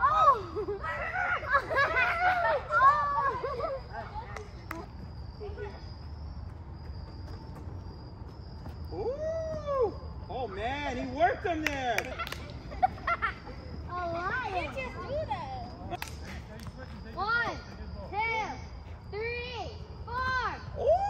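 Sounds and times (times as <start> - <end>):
steady low rumble: 12.1 - 21.0.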